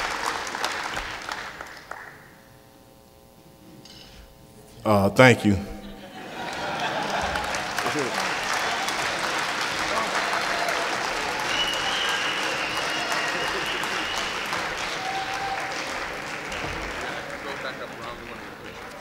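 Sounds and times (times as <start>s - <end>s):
audience applauding: 0.0s - 2.3s, 6.2s - 19.0s.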